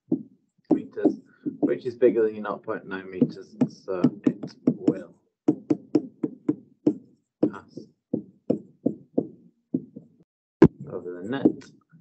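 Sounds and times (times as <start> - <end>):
stylus tapping on tablet screen: 0.0 - 1.9, 3.2 - 11.7.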